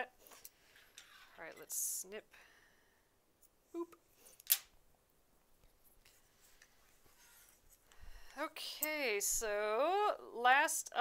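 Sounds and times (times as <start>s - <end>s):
handling fabric and thread: 5.4s - 9.6s.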